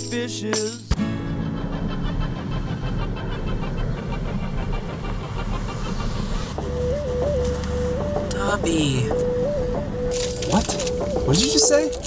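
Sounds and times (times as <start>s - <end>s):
truck engine and tyre noise: 1.0s - 12.0s
deep rumble: 1.2s - 12.0s.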